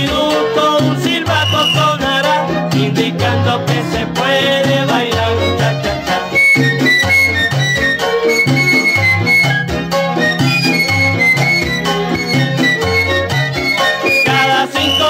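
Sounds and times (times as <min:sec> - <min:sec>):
piano: 0:00.0 - 0:15.0
steady bass line: 0:00.0 - 0:15.0
flute melody: 0:01.2 - 0:02.3, 0:05.5 - 0:15.0
violins: 0:05.1 - 0:15.0.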